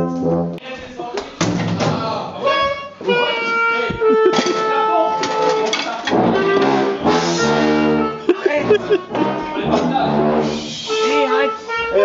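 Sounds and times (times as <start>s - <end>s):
brass band playing: 0.0s - 0.7s, 2.4s - 12.0s
people's voices: 0.6s - 12.0s.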